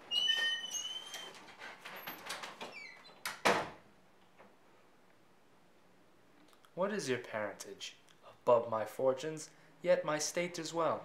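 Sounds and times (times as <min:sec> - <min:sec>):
door hinge squealing: 0:00.0 - 0:01.5, 0:02.6 - 0:03.3
door shutting thud: 0:03.2 - 0:03.8.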